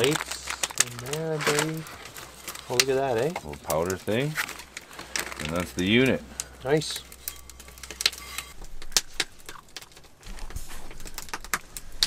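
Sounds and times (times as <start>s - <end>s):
steady low hiss: 0.0s - 12.0s
cast iron pan clinking: 4.8s - 8.6s.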